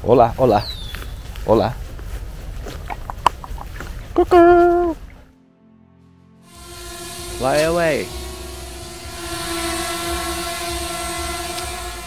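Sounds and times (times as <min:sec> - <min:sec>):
geese bills cropping grass: 0:00.1 - 0:05.3
steady low rumble: 0:06.5 - 0:12.0.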